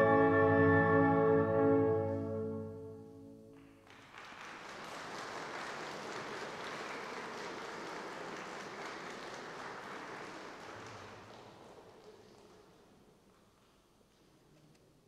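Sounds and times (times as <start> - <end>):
audience applauding: 3.5 - 13.6.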